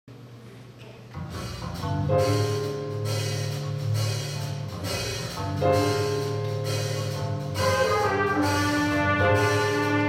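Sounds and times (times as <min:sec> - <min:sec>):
jazz band playing: 0:01.1 - 0:10.0.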